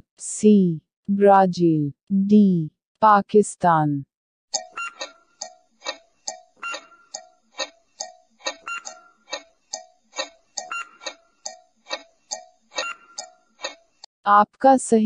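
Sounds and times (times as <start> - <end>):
clock ticking: 4.6 - 14.0.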